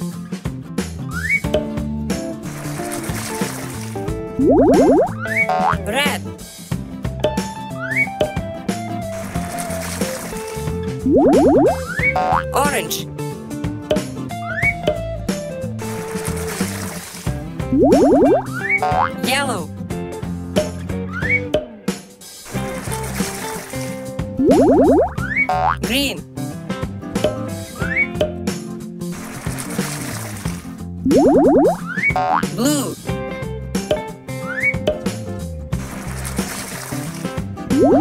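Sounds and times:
cheerful cartoon music: 1.1 - 28.6, 31.1 - 38.0.

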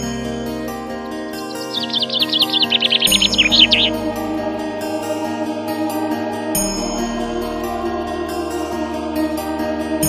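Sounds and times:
background music held chords: 0.0 - 10.0
songbird trilling: 1.3 - 4.1.

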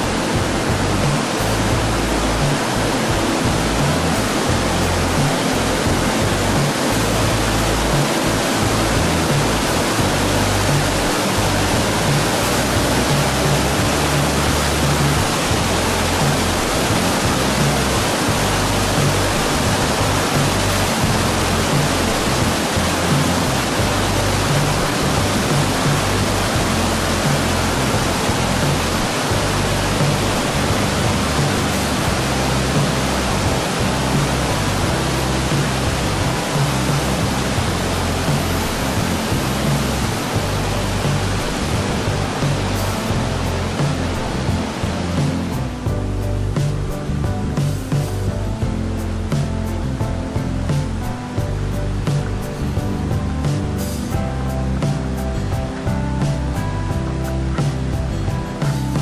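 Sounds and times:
stream rushing over stones: 0.0 - 59.0.

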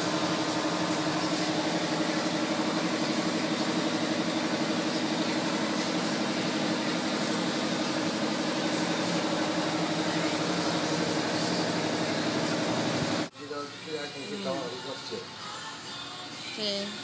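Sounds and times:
car engine idling: 0.0 - 13.3.

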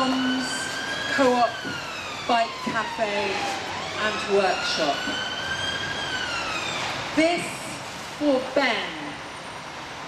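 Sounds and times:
emergency siren wailing: 0.0 - 7.2.

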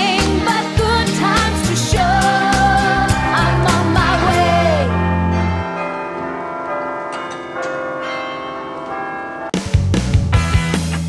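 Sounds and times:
rock music with drums and guitar: 0.0 - 5.2, 9.5 - 11.0.

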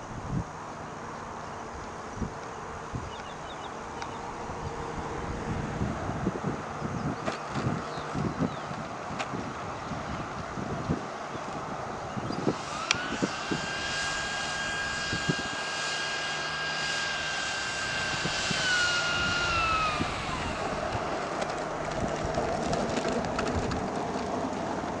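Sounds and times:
electric ducted fan whine: 0.0 - 25.0.

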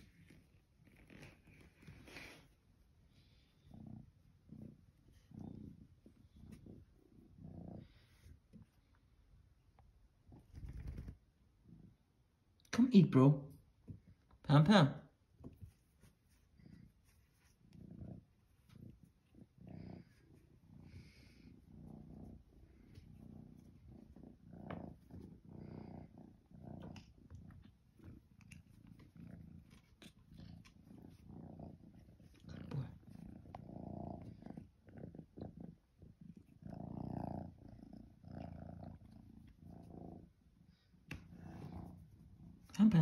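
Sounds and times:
kitten purring: 0.0 - 12.6, 15.2 - 43.0.

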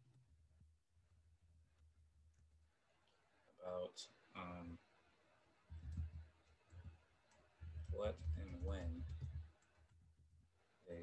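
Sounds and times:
keyboard typing: 5.7 - 6.9, 7.6 - 9.9.

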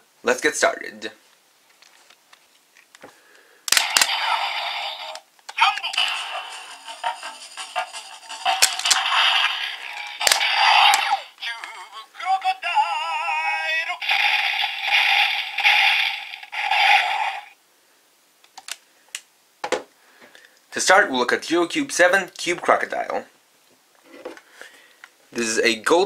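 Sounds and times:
toy electronic sound effects: 3.8 - 5.2, 8.6 - 11.4, 14.0 - 17.5
recorded voice call: 4.0 - 9.2, 10.3 - 15.0
music through tinny speaker: 5.9 - 8.8.

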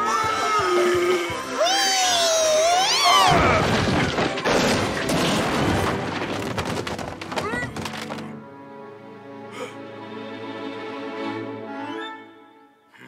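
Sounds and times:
background music: 0.0 - 13.0
crash of falling books: 3.3 - 8.3.

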